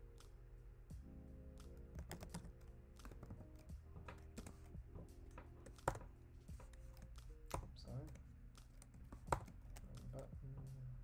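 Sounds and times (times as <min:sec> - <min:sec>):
keyboard keystrokes: 0:01.6 - 0:04.7, 0:05.5 - 0:10.2.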